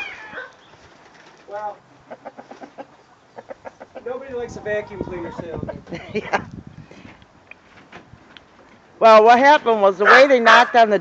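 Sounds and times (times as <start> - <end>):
chickens clucking: 0.0 - 6.0.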